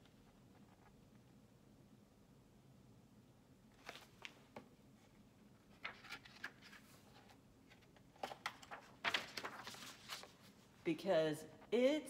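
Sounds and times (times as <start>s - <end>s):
book pages rustling: 3.8s - 4.7s, 5.6s - 10.8s.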